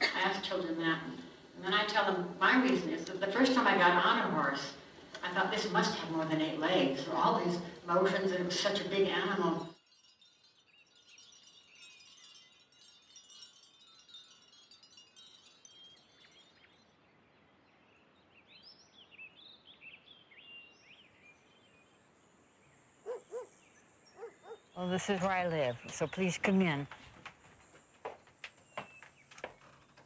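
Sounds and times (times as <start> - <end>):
birds chirping: 15.9 - 30.0.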